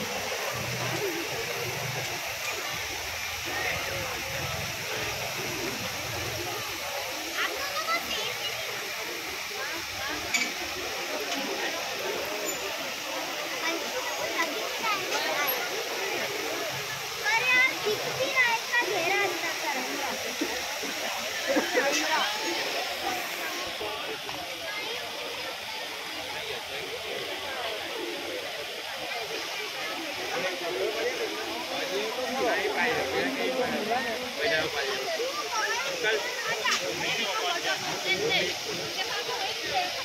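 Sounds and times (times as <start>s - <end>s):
faint crowd voices: 0.0s - 40.0s
fountain water spraying: 0.0s - 40.0s.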